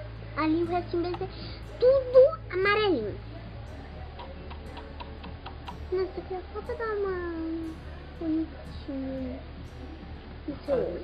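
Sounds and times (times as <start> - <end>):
low steady hum: 0.0 - 11.0
light even ticking: 4.1 - 5.9.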